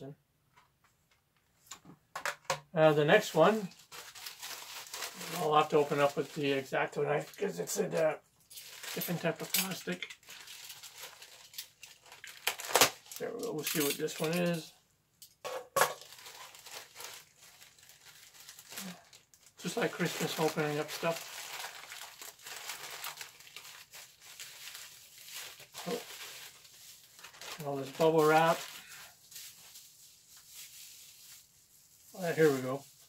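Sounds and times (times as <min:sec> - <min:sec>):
plastic packaging crinkling: 0:03.1 - 0:14.6, 0:15.9 - 0:33.0
bubble wrap rustling: 0:03.1 - 0:14.7, 0:16.0 - 0:33.0.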